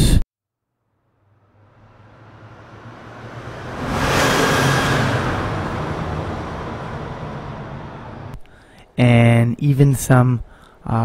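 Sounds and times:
vehicle passing by: 1.1s - 8.4s.

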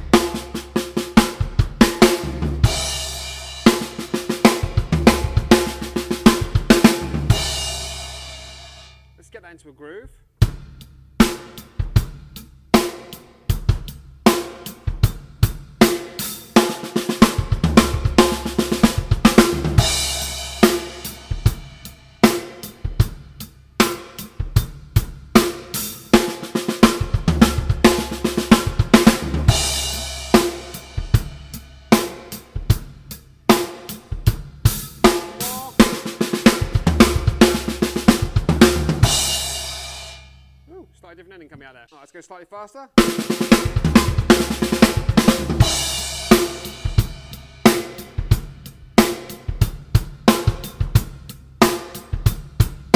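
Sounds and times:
bass drum kicks: 0.0s - 8.0s, 10.4s - 12.4s, 17.2s - 25.5s, 26.2s - 33.2s, 34.1s - 39.7s, 43.0s - 51.3s
drum rolls on snare and toms: 0.0s - 8.1s, 10.4s - 39.8s, 43.0s - 52.9s.

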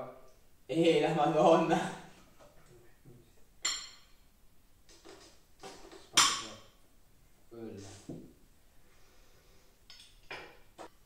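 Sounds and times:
spoons clinking on glass jars: 3.6s - 4.2s.

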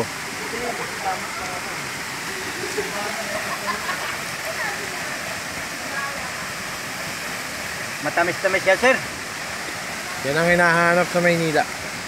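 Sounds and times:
waterfall: 0.0s - 12.0s.

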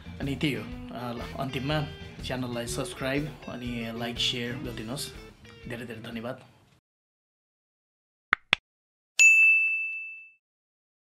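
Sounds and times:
notification bell ding: 9.2s - 10.4s.

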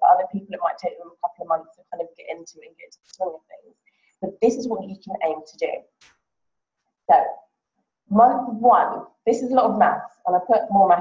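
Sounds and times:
woman speaking: 0.0s - 3.6s, 4.2s - 5.8s, 7.1s - 7.4s, 8.1s - 11.0s.

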